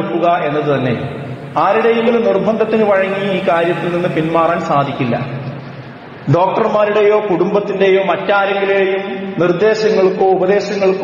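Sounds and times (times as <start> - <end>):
man chanting melodically: 0.0 - 5.6.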